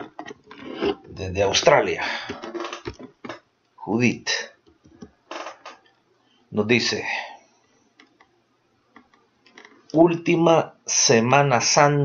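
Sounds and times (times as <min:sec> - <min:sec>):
person talking: 0:01.0 - 0:03.0, 0:06.6 - 0:07.3.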